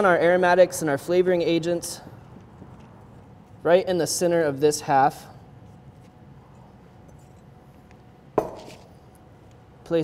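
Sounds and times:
glass bowl knocking on wood: 8.4s - 8.7s.

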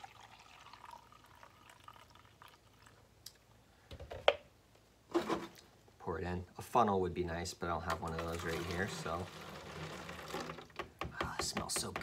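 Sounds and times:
liquid trickling into a cup: 0.0s - 3.1s, 8.1s - 10.7s.

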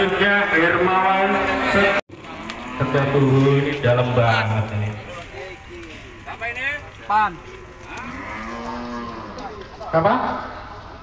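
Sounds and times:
cattle mooing: 7.8s - 9.7s.

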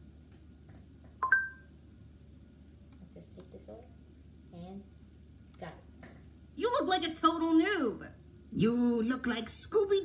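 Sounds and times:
faint low hum: 0.0s - 10.0s
two-tone electronic beep: 1.2s - 1.6s.

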